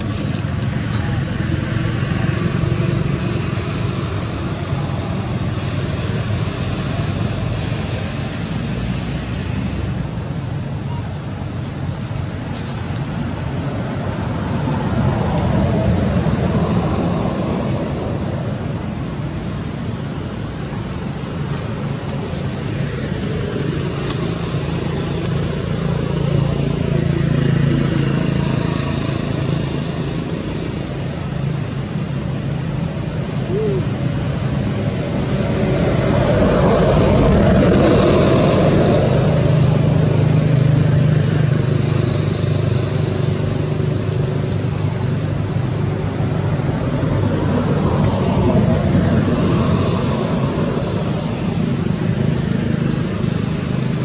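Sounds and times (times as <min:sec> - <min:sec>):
motor vehicles rumbling: 0:00.0 - 0:54.0.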